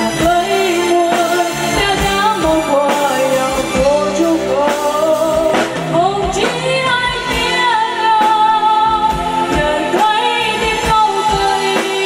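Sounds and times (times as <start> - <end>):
drum kit steady beat: 0.0 - 12.0
keyboard: 0.0 - 12.0
woman singing with vibrato: 0.0 - 12.0.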